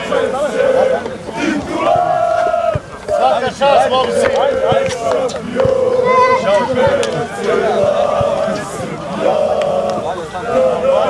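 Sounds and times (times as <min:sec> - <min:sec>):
men shouting and cheering: 0:00.0 - 0:11.0.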